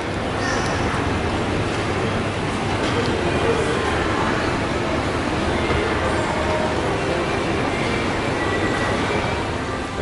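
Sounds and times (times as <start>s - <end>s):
echoing hall noise: 0.0s - 10.0s
indistinct crowd voices: 0.0s - 10.0s.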